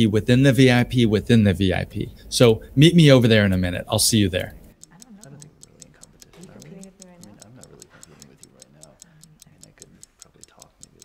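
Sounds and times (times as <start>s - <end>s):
faint even ticking: 2.5s - 11.0s
faint murmur of voices: 4.9s - 11.0s.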